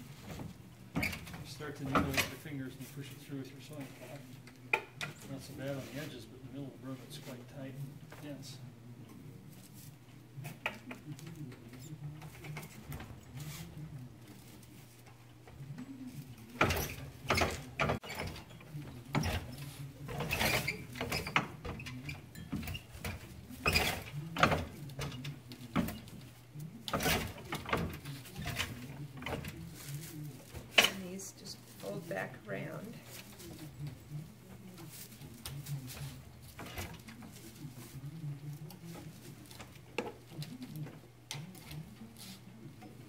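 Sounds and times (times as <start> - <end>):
straw crackling and rustling: 0.0 - 43.0.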